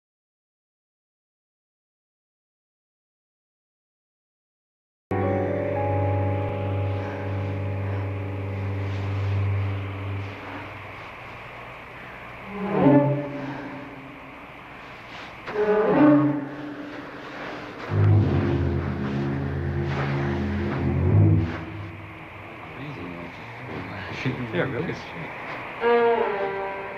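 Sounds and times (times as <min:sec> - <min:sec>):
low bowed strings: 0:05.1 - 0:26.9.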